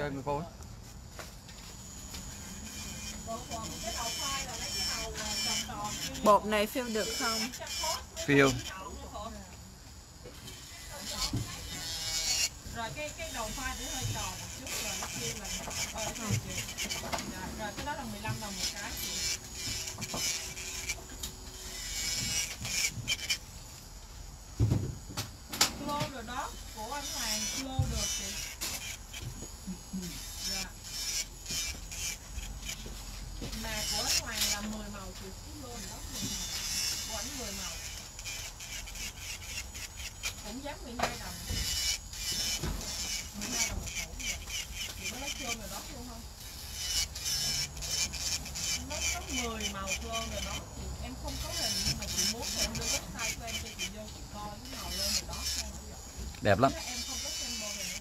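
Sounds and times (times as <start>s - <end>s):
electric nail drill filing: 1.1s - 58.0s
background talk: 47.2s - 58.0s.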